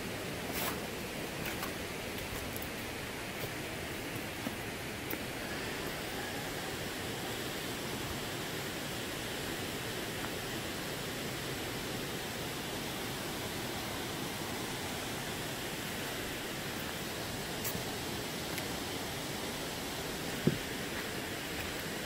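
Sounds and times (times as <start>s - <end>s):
waterfall rushing: 2.8s - 22.0s.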